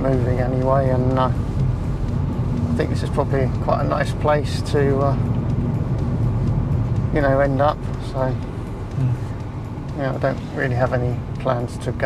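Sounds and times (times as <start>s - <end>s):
car cabin engine and road drone: 0.0s - 12.0s.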